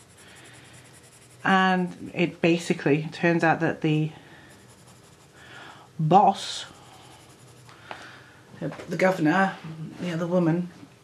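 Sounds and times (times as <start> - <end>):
pencil scratching on paper: 0.0 - 2.0, 4.3 - 5.4, 6.3 - 7.7.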